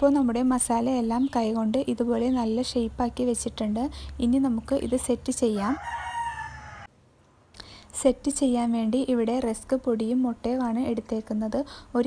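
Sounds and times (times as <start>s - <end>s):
rooster crowing: 5.6s - 6.9s.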